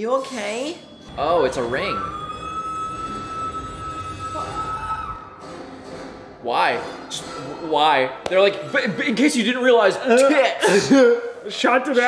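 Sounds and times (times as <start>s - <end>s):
lower held scream: 1.5s - 5.4s
woman screaming: 2.1s - 5.4s.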